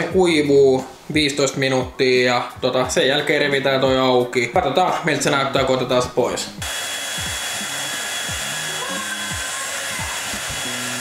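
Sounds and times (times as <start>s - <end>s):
hair dryer running: 6.6s - 11.0s.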